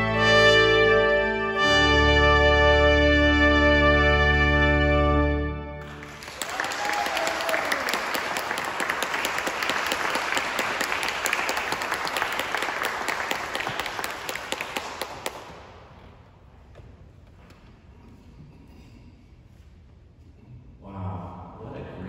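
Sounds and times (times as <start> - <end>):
trumpet and pipe organ chord: 0.0 - 6.2
audience applause: 5.8 - 15.6.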